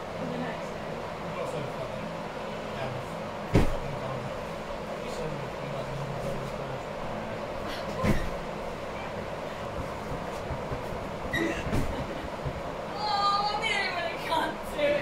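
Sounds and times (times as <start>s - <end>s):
indoor hall background hum: 0.0s - 15.0s.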